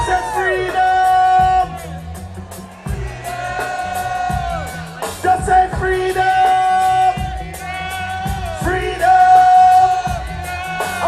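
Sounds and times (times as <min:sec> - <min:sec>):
reggae band playing: 0:00.0 - 0:11.0.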